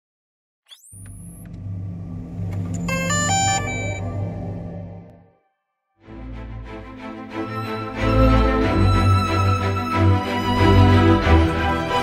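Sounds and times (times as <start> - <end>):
low electronic hum: 1.0 - 5.4.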